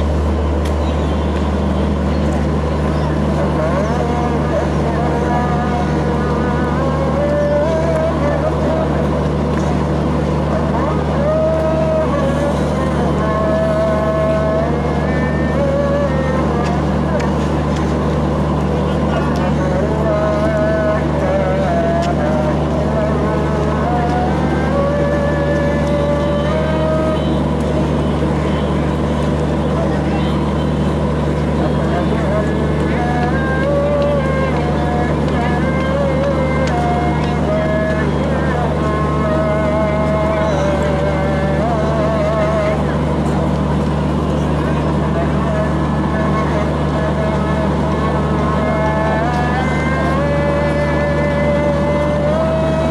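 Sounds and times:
crowd babble and calls: 0.0 - 52.9
diesel train humming: 0.0 - 52.9.

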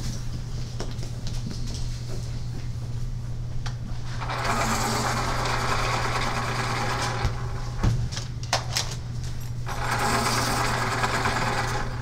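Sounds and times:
steady low hum: 0.0 - 12.0
small motor buzzing: 9.7 - 12.0.

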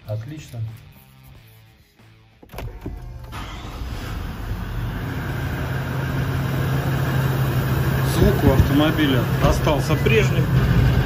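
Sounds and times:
diesel engine starting and idling: 2.5 - 11.0.

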